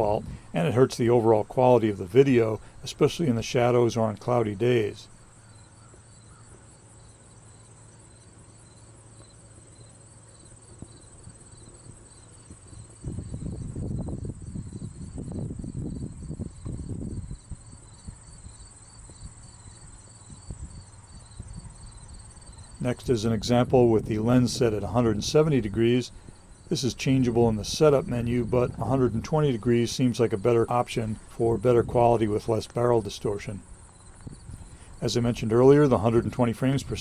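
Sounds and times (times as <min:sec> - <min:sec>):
insects chirping: 0:00.0 - 0:37.0.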